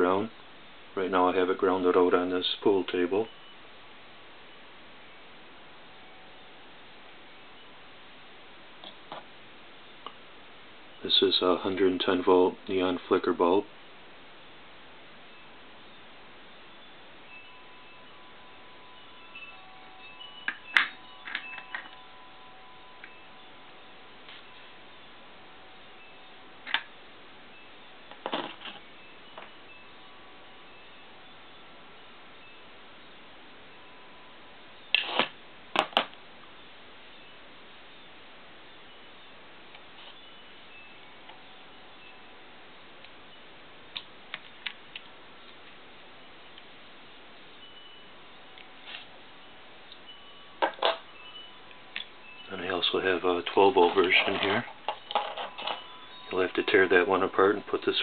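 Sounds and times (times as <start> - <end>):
faint steady hiss: 0.0 - 58.0
faint thin high tones: 2.7 - 3.8, 4.4 - 8.1, 14.4 - 35.3, 46.1 - 58.0
glass lamps clicking and knocking: 20.4 - 22.1, 28.1 - 29.6, 49.9 - 52.2, 52.8 - 56.7.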